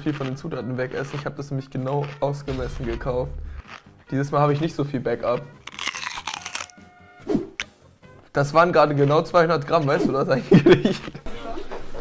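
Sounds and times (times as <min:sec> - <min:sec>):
crunchy bite into mushroom: 0:05.6 - 0:06.8.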